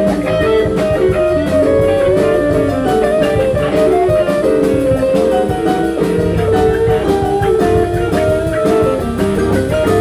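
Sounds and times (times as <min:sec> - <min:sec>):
bass guitar: 0:00.0 - 0:10.0
drums with steady cymbal: 0:00.0 - 0:10.0
electric guitar line: 0:00.0 - 0:10.0.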